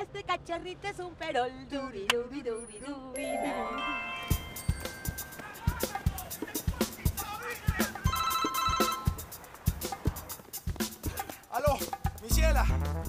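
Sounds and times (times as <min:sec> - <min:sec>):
mobile phone ringing: 0:03.2 - 0:05.6, 0:08.0 - 0:09.2
background music with steady beat: 0:04.1 - 0:13.0.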